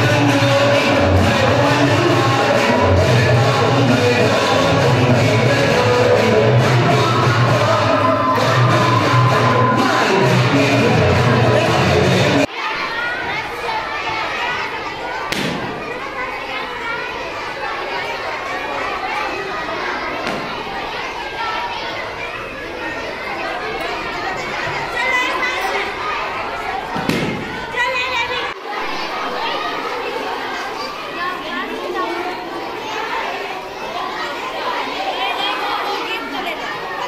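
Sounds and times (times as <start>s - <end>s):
crowd of voices chattering: 0.0s - 37.0s.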